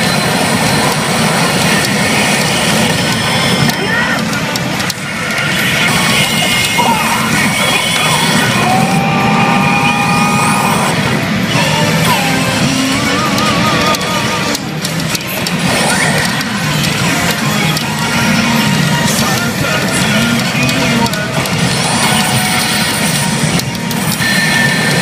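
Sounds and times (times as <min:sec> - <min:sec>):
pachinko machine music: 0:00.0 - 0:25.0.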